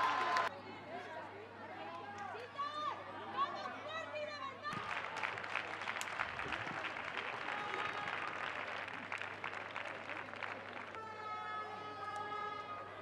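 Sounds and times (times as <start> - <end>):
scattered applause: 0.0 - 0.5, 4.7 - 12.7.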